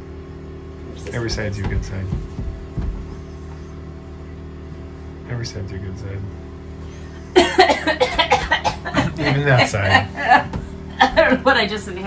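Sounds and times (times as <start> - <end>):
woman coughing: 7.3 - 11.4.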